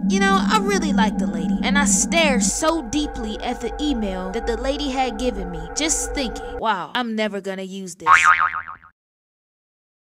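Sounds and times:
cartoon boing sound effect: 8.1s - 8.9s.

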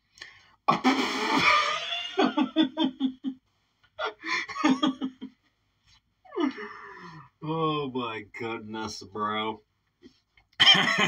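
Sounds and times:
man laughing hard: 1.4s - 3.4s, 4.0s - 5.3s, 10.6s - 11.0s.

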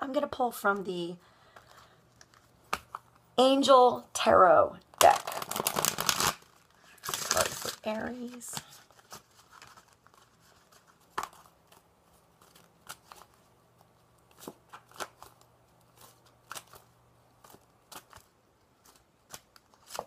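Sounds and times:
cards being shuffled: 1.6s - 3.2s, 4.9s - 20.0s.

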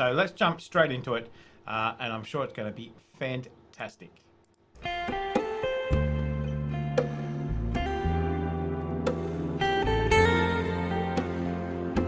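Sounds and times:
plucked guitar notes: 4.8s - 12.0s.

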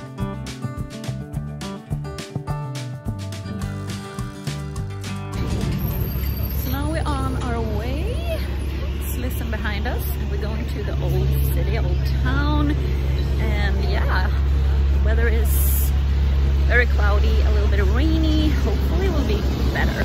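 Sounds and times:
city road traffic rumble: 0.0s - 20.0s
buses and trucks passing: 3.3s - 20.0s.

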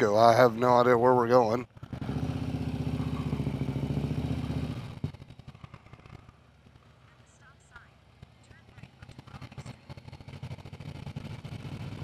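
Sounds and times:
motorcycle engine idling: 1.6s - 12.0s.

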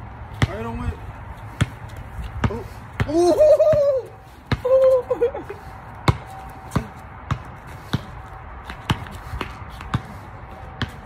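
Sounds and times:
basketball bouncing on concrete: 0.2s - 5.1s, 5.9s - 11.0s.

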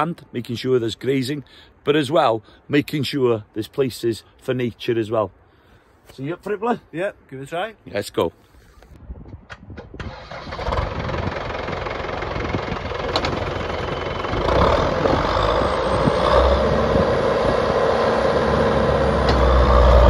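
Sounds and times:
tractor diesel engine running: 10.0s - 20.0s.

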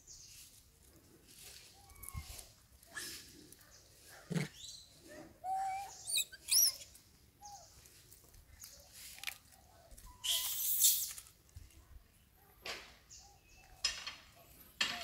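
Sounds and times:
monkeys squeaking and calling: 5.4s - 6.9s, 10.1s - 11.2s.

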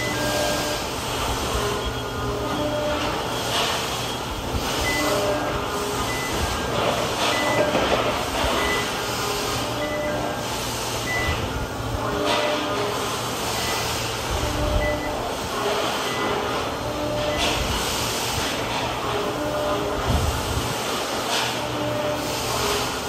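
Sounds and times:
forklift warning beeps: 0.0s - 17.9s.

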